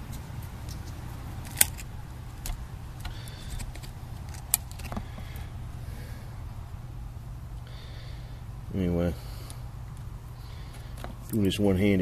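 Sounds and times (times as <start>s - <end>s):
faint handling noises: 0.0s - 5.6s, 9.4s - 12.0s
steady low hum: 0.0s - 12.0s.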